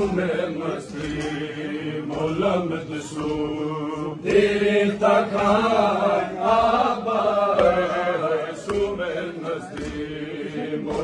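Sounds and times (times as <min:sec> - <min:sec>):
men chanting a lament: 0:00.0 - 0:11.0.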